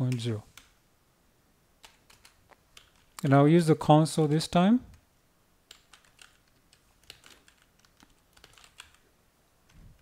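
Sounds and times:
computer keyboard typing: 0:01.8 - 0:03.2, 0:05.6 - 0:09.0.

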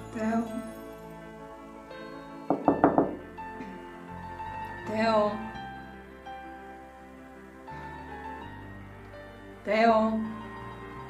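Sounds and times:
soft background music: 0:00.0 - 0:11.0
knocks on a door: 0:02.5 - 0:03.2.

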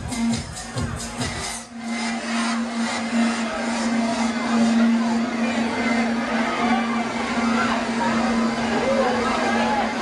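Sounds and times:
dense noisy wash: 0:01.4 - 0:10.0
held low synth note: 0:01.7 - 0:10.0.

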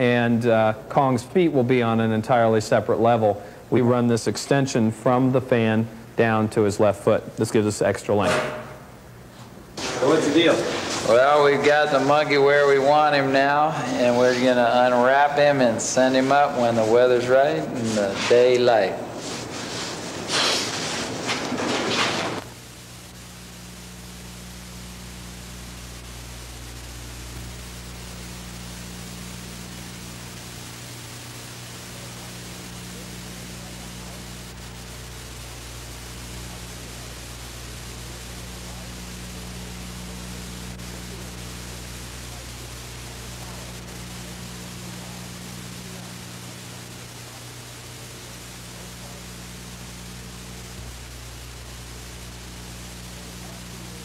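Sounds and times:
even hiss: 0:00.0 - 0:54.0
low electrical hum: 0:00.0 - 0:54.0.

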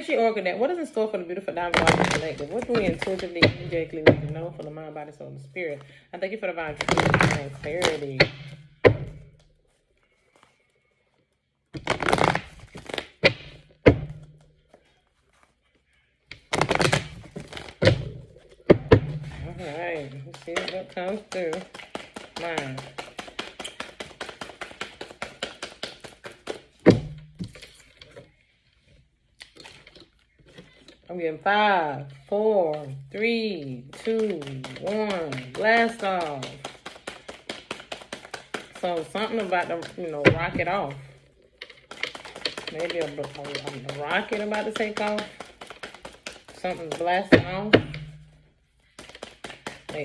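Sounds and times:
cards being shuffled: 0:11.8 - 0:13.5, 0:16.3 - 0:18.6, 0:41.6 - 0:46.9.

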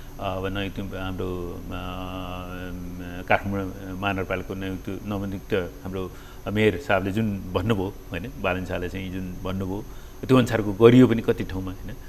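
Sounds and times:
man speaking: 0:00.2 - 0:12.0.

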